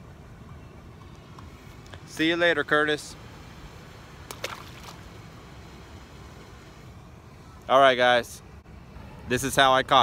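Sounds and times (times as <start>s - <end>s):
outdoor background rumble and hiss: 0.0s - 10.0s.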